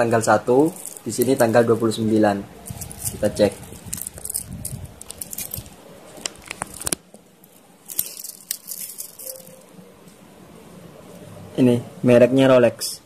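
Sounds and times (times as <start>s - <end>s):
handling clicks and rustles: 0.6s - 1.7s, 2.6s - 9.7s.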